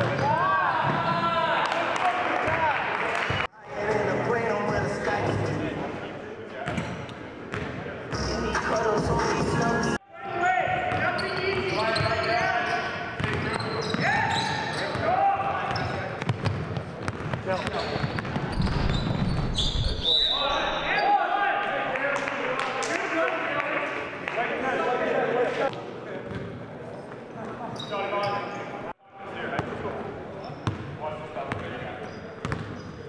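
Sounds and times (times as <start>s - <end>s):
sneaker squeaks: 6.6s - 7.8s, 10.9s - 21.2s, 26.3s - 28.8s, 30.4s - 30.9s, 31.5s - 33.0s
basketball bouncing on gym floor: 13.2s - 14.1s, 15.7s - 19.6s
referee's whistle: 18.9s - 21.1s.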